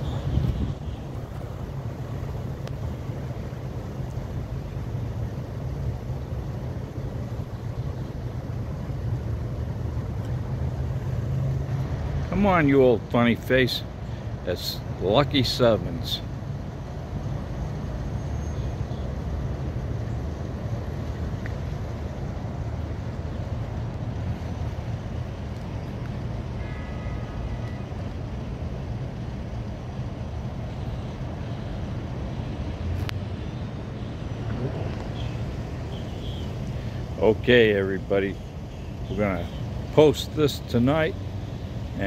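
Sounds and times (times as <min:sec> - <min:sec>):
road traffic rumble: 0:00.0 - 0:42.0
faint tone: 0:26.6 - 0:27.9.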